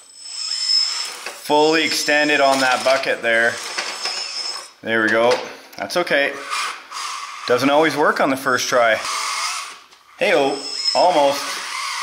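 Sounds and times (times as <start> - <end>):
electric motors whining: 0.0 - 4.8, 10.5 - 12.0.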